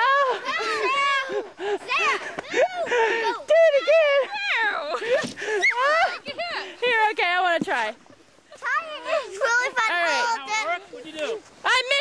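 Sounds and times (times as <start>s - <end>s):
children calling out and squealing: 0.0s - 6.8s, 8.5s - 10.8s.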